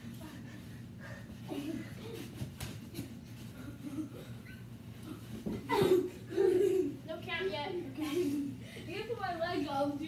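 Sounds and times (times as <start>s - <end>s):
heavy breathing: 0.3s - 2.3s.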